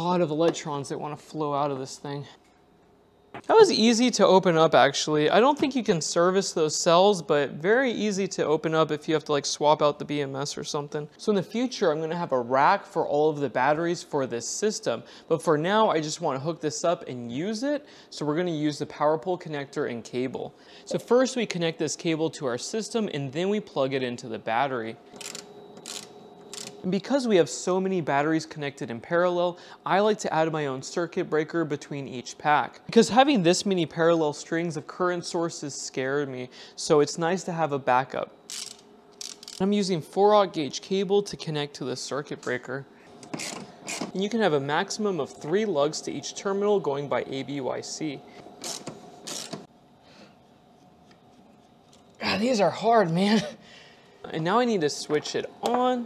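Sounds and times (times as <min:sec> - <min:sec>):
faint steady hum: 0:00.0 - 0:56.0
cable lug creaking scrape on terminal: 0:25.2 - 0:26.8, 0:38.5 - 0:39.6, 0:43.2 - 0:44.1, 0:48.6 - 0:49.7.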